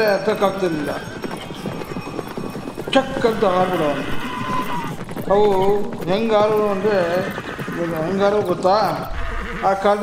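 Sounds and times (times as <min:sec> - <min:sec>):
horses galloping hoofbeats: 0:00.0 - 0:10.0.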